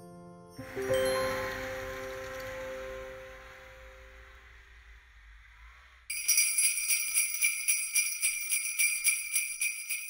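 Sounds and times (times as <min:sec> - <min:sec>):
held musical chord: 0:00.6 - 0:04.6
faint low rumble: 0:01.1 - 0:06.1.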